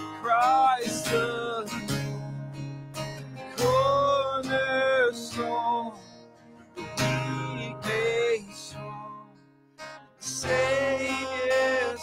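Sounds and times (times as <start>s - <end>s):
man singing: 0.0s - 2.2s, 3.4s - 9.4s, 10.2s - 12.0s
strummed acoustic guitar: 0.0s - 12.0s.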